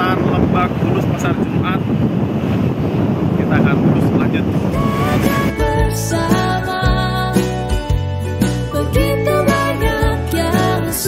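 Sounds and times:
wind buffeting microphone: 0.0s - 6.8s
music: 4.8s - 11.0s.

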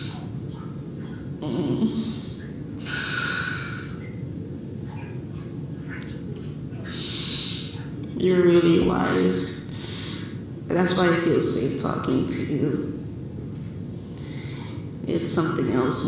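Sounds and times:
low steady background hum: 0.0s - 16.0s.

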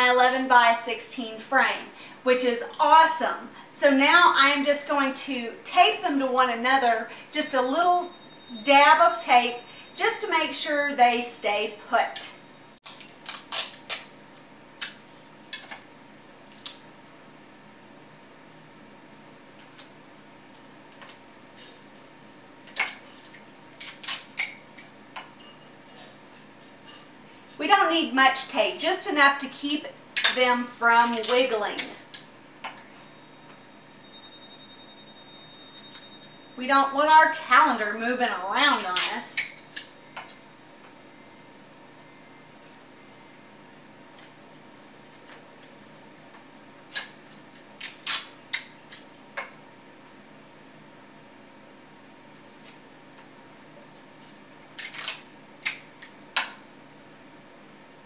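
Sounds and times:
adhesive tape ripping: 12.8s - 14.1s, 23.8s - 24.6s, 38.7s - 39.5s, 47.8s - 48.7s, 54.8s - 55.8s
sticky tape ripping off roll: 12.8s - 14.1s, 47.8s - 48.7s.

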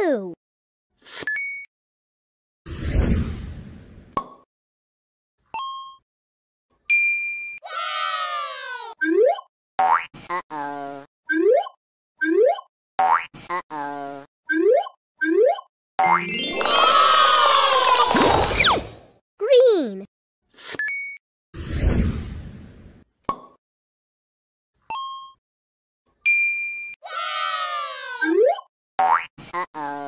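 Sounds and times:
overlapping cartoon glides: 14.7s - 19.9s
cartoon falling tone: 16.0s - 19.0s.

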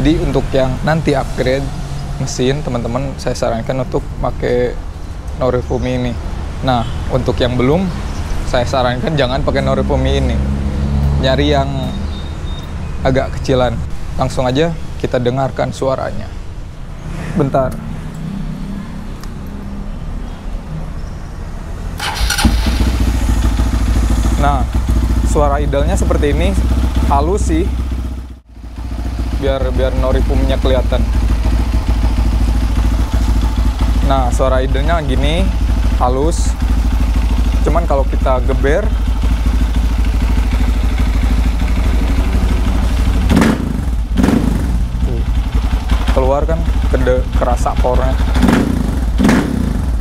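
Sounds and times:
motorcycle engine starting and idling: 22.0s - 50.0s.

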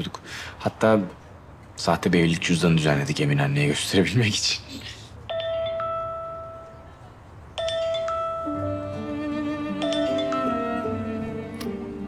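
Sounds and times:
two-note phone ringtone chime: 5.3s - 7.0s, 7.6s - 11.3s.

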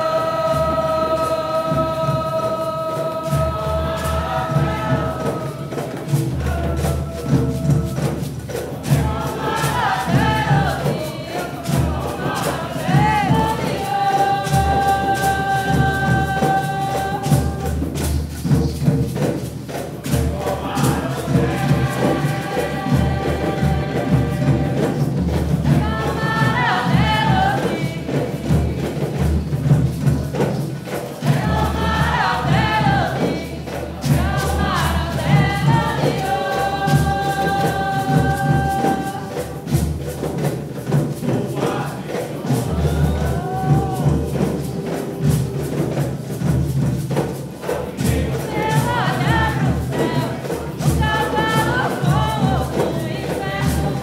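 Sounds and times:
drums and hand percussion: 0.0s - 54.0s
group singing religious song: 0.0s - 54.0s.

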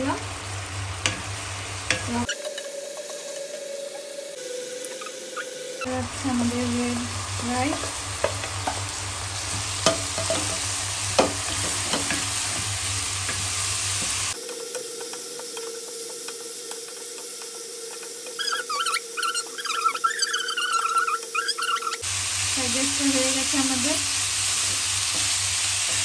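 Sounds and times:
rice sizzling in a wok: 0.0s - 26.0s
high wavering squeaks: 2.2s - 7.9s, 18.2s - 22.1s
steady hum: 3.2s - 14.4s
spatula scraping pan: 7.4s - 14.4s.

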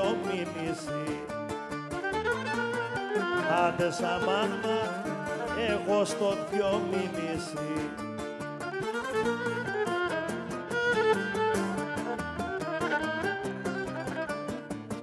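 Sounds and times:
bowed lyra melody: 0.0s - 14.6s
strummed lutes and guitar: 0.0s - 15.0s.

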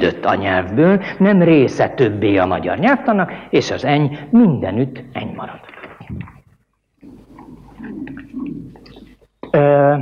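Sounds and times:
man lecturing: 0.0s - 5.8s, 9.5s - 10.0s.

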